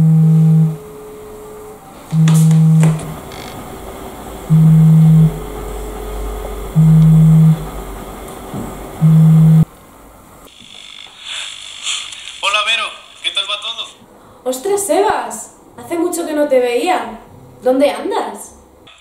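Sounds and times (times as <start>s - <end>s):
phone vibrating on tabletop: 0.0s - 1.1s, 2.1s - 3.6s, 4.5s - 7.7s, 9.0s - 9.7s, 10.5s - 11.9s.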